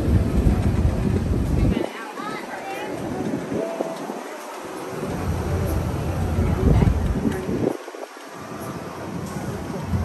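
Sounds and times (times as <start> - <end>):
monorail low rumble: 0.0 - 10.0
wind buffeting microphone: 0.0 - 10.0.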